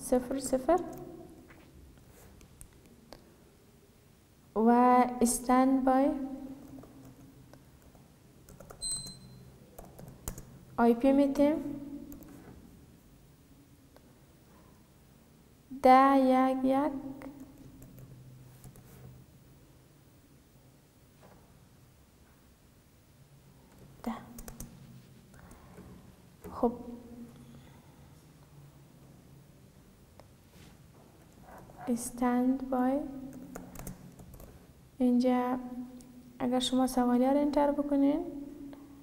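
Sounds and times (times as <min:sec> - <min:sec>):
person speaking: 0:00.0 - 0:01.4, 0:10.8 - 0:12.4, 0:23.9 - 0:25.4, 0:31.7 - 0:33.5.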